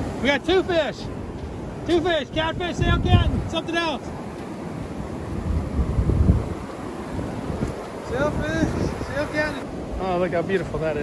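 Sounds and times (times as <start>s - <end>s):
surf washing up beach: 0.0s - 11.0s
wind buffeting microphone: 0.0s - 11.0s.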